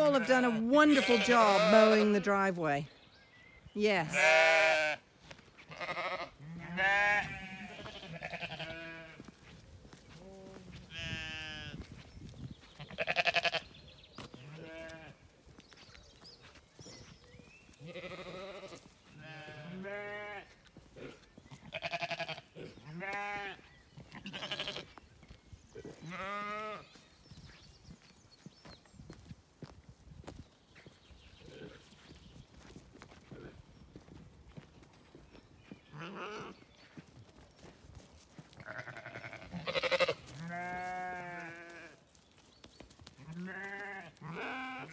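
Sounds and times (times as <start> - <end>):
sheep bleating: 0.0 - 2.5, 4.0 - 5.0, 5.6 - 9.3, 10.1 - 11.8, 12.7 - 13.7, 14.4 - 15.2, 17.8 - 25.0, 25.8 - 26.9, 35.9 - 36.6, 38.6 - 42.0, 43.2 - 44.9.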